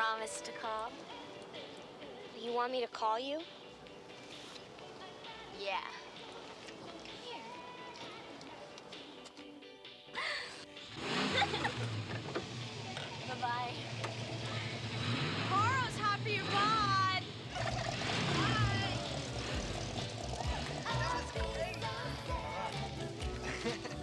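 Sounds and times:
background music: 0.0 - 24.0
young people shouting and laughing: 20.5 - 22.3.

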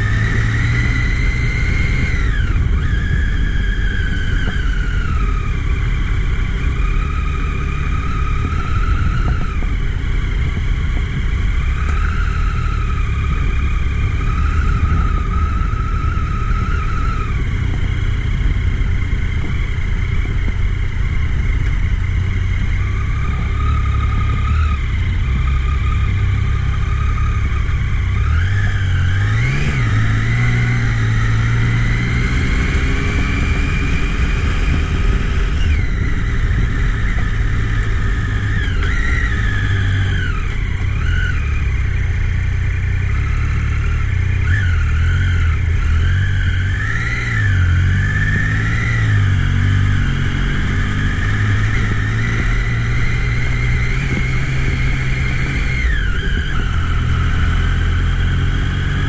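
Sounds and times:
motorcycle engine revving: 0.0 - 59.0
wind and road noise: 0.0 - 59.0.

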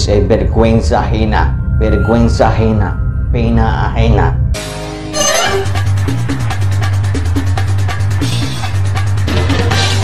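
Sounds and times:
music with deep bass and fast beat: 5.6 - 10.0.

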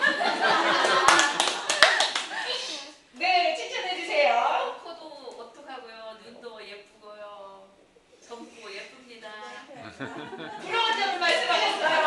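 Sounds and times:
hand claps: 0.8 - 2.4
women laughing and talking: 9.6 - 12.0.

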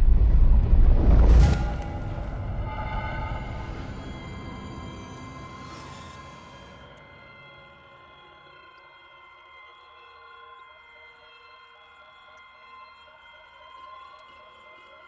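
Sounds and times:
drone-like synth tones: 1.4 - 15.0
faint synth pulse: 1.6 - 10.2.

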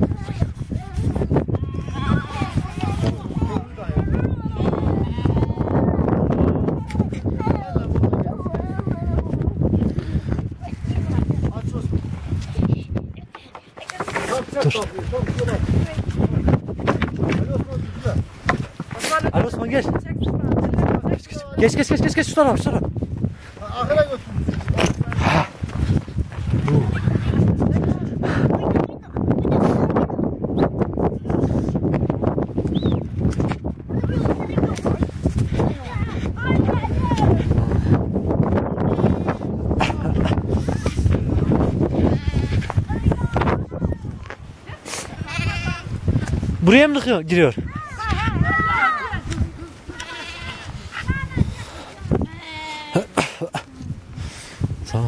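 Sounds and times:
wind on microphone: 0.0 - 55.0
sheep and lambs bleating: 41.9 - 42.7, 45.2 - 46.0, 49.9 - 51.0, 52.2 - 53.2.

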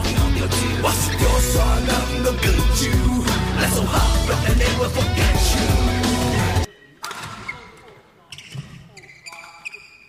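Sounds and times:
shoes squeaking on floor: 7.4 - 10.0.

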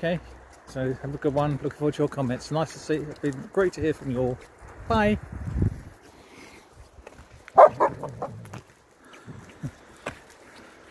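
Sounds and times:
dog barking: 7.6 - 8.4.

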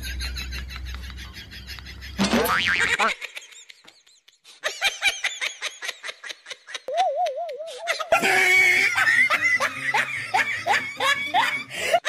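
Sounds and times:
person giggling: 5.8 - 12.0.

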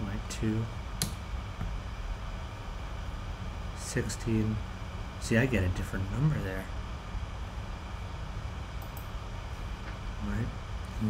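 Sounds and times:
low background hum and hiss: 0.0 - 11.0.

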